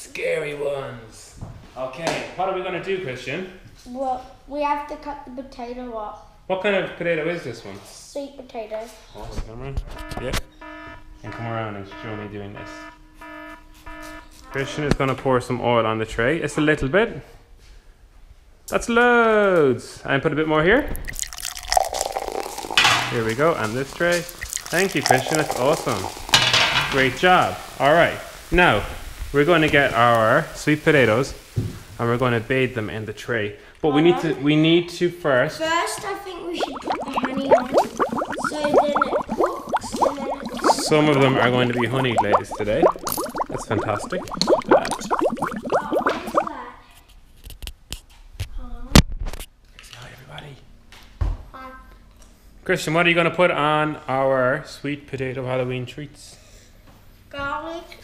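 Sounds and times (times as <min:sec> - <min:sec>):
oil glugging from a bottle: 0:21.0 - 0:27.0, 0:36.6 - 0:46.5.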